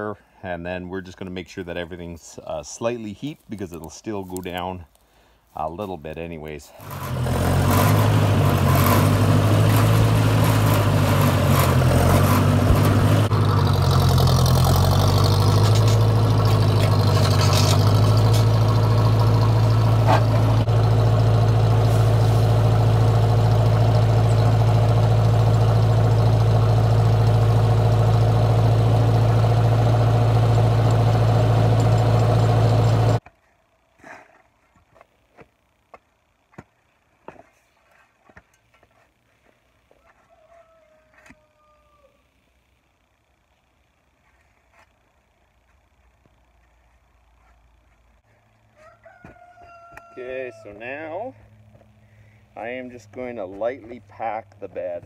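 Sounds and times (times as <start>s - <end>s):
tractor engine running: 6.6s - 33.3s.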